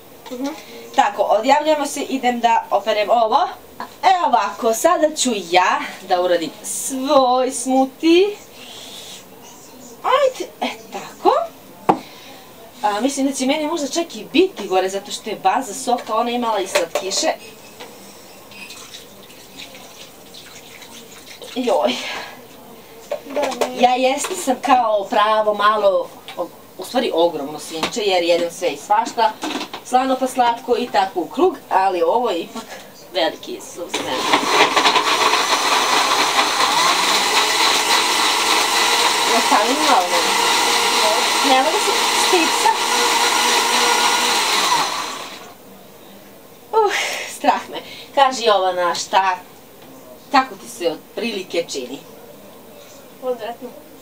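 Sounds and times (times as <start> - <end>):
blender motor running: 34.0 - 45.5.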